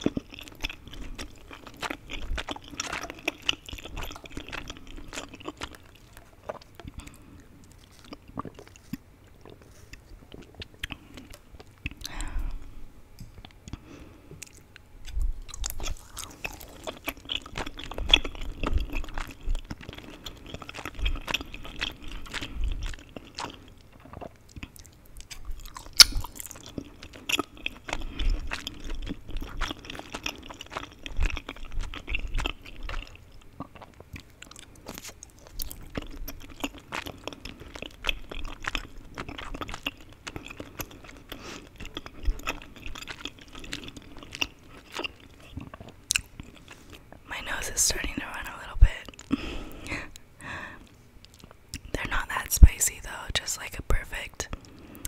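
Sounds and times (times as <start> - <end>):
close chewing mouth sounds: 0.0 - 12.6, 13.2 - 55.0.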